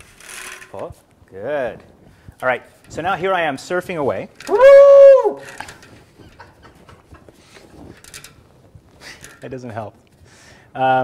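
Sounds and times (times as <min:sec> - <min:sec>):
man shouting woo into a duct: 0:04.5 - 0:05.4.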